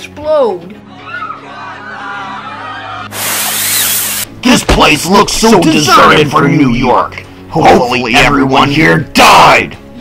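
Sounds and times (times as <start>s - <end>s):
background music with low drone: 0.0s - 10.0s
loud hissing whoosh: 3.1s - 4.3s.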